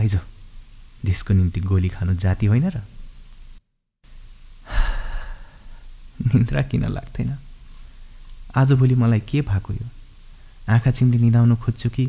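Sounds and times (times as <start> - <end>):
man breathing: 4.6 - 5.9
man speaking: 10.7 - 12.0.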